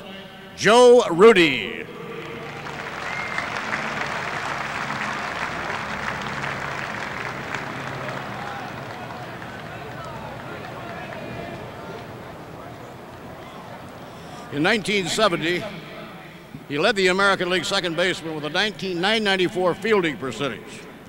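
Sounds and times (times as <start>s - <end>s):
stadium crowd applauding: 1.4s - 15.6s.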